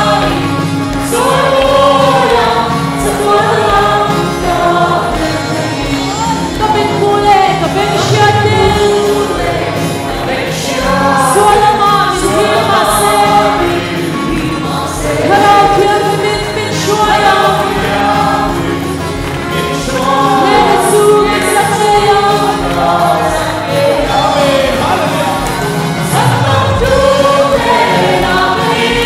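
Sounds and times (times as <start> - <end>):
band playing a steady beat: 0.0 - 29.0
choir singing gospel: 0.0 - 29.0.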